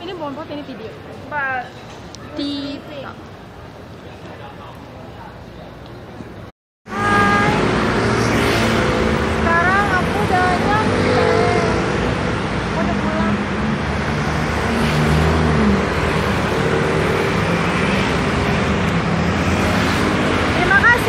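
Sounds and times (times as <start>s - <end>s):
road traffic: 0.0s - 21.0s
indistinct voices: 6.9s - 8.0s.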